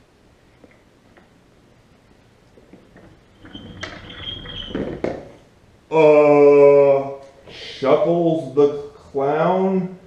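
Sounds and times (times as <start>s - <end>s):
rustling and knocks: 2.5s - 5.5s.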